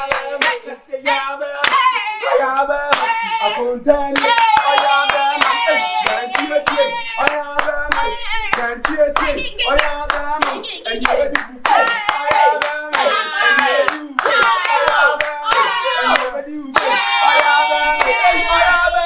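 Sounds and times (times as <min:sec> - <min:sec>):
hands clapping in rhythm: 0:00.0 - 0:00.7, 0:01.6 - 0:02.0, 0:02.9 - 0:03.3, 0:04.1 - 0:18.3
people singing along: 0:00.0 - 0:19.0.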